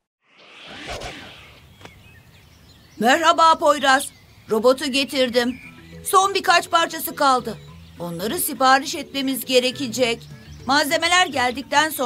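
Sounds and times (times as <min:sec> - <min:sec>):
whoosh sound effect: 0:00.2 - 0:02.0.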